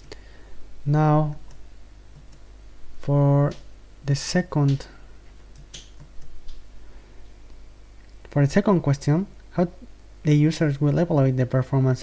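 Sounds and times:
low steady hum: 0:00.0 - 0:12.0
person speaking: 0:00.8 - 0:01.5, 0:03.0 - 0:05.1, 0:08.2 - 0:12.0.

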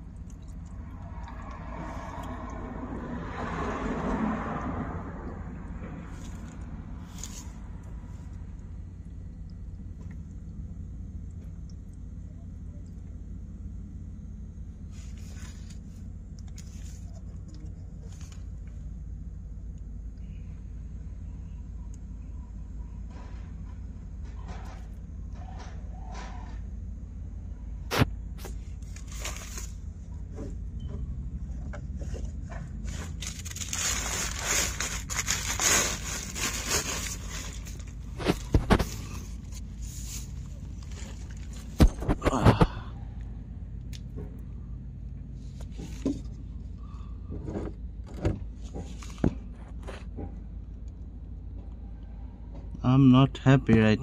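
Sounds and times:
scraping rustle: 0:28.4 - 0:30.6, 0:31.8 - 0:42.2.

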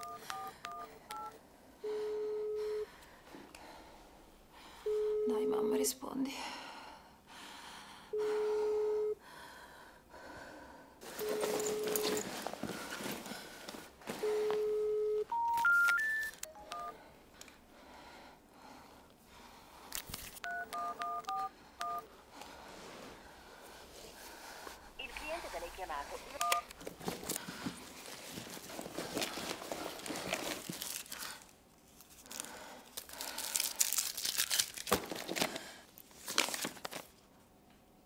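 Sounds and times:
keypad beeps: 0:00.0 - 0:01.4, 0:14.4 - 0:17.0, 0:20.4 - 0:22.1, 0:26.3 - 0:26.7
telephone ringback tone: 0:00.0 - 0:02.9, 0:14.2 - 0:17.0, 0:20.4 - 0:22.1, 0:26.4 - 0:26.7.

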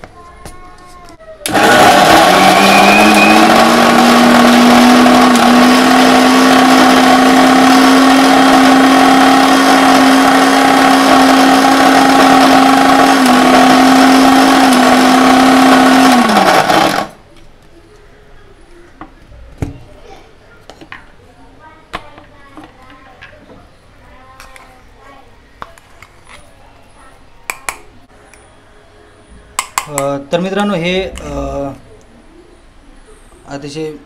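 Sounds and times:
mixer grinder motor running: 0:01.5 - 0:17.2.

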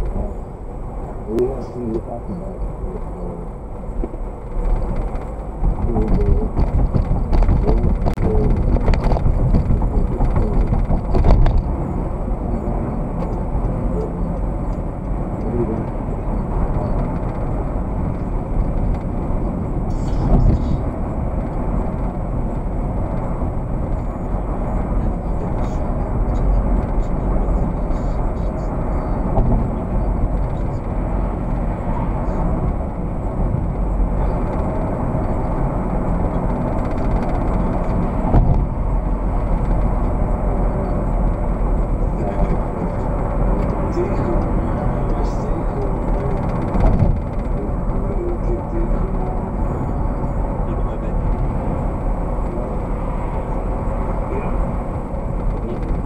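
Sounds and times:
car road and engine rumble: 0:00.0 - 0:56.0.

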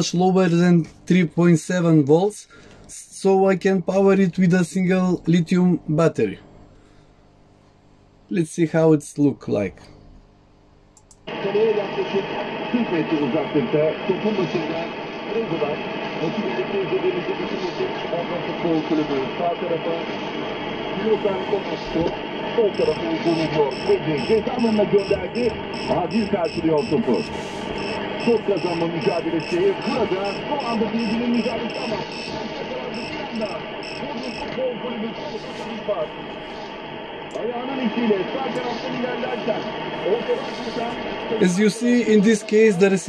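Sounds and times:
faint regular clicks: 0:10.9 - 0:11.3
muffled radio speech: 0:11.3 - 0:43.0.

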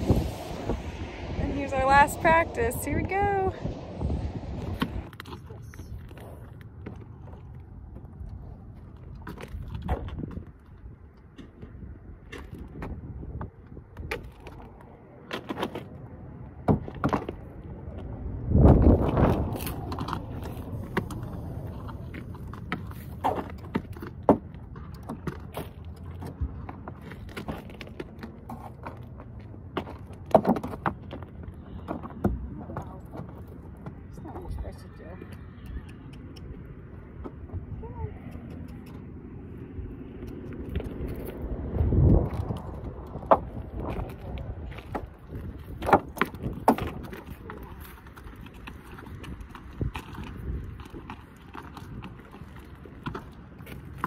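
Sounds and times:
hooves and boots crunching on gravel: 0:16.8 - 0:35.1, 0:39.6 - 0:54.0.

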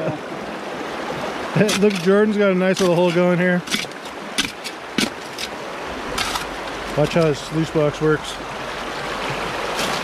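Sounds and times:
creek water running over rocks: 0:00.0 - 0:10.0
digging tool scraping gravel: 0:01.6 - 0:07.4.

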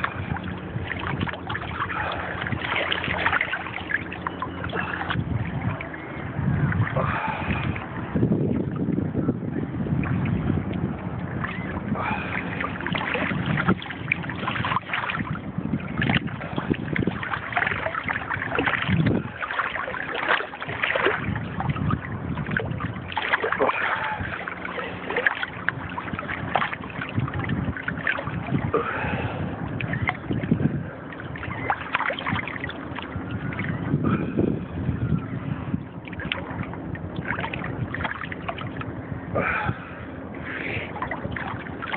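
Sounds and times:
small waves lapping and splashing: 0:00.0 - 0:41.9
wind buffeting microphone: 0:00.0 - 0:41.9.

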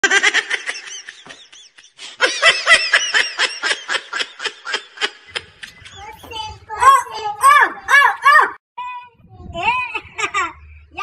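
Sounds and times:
high-pitched laughter: 0:09.7 - 0:11.0.

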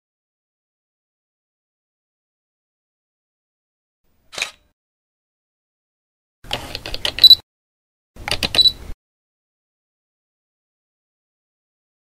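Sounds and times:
camera shutter clicks: 0:04.3 - 0:04.6.

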